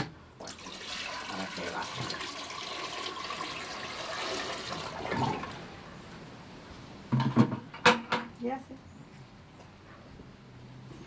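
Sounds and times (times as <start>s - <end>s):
water pouring into toilet bowl: 0.4s - 5.6s.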